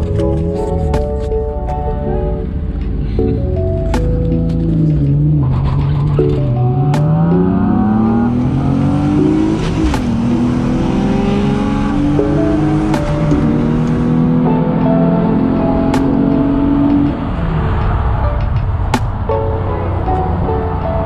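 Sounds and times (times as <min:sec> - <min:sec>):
car engine accelerating: 0:00.0 - 0:21.0
music playing in car: 0:00.0 - 0:21.0.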